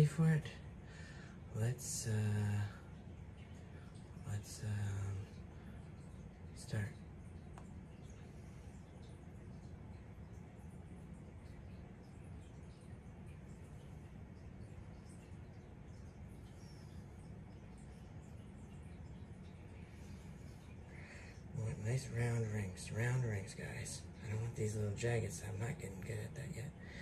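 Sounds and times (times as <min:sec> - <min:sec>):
faint low hum: 0:00.0 - 0:27.0
faint ticks: 0:02.5 - 0:21.6.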